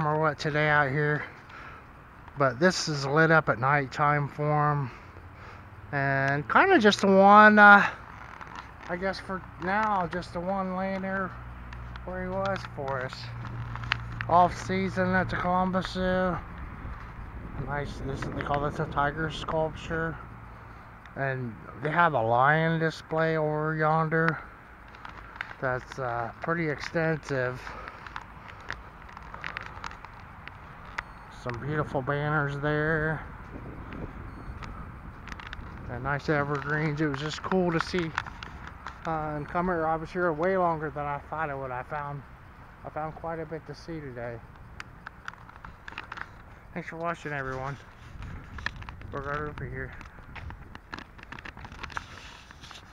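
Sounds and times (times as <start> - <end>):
low outdoor rumble: 0.0 - 52.9
wind rumble on microphone: 13.3 - 20.7, 31.0 - 38.7, 47.4 - 52.9
camera handling knocks and rustles: 44.7 - 46.6, 47.8 - 52.9.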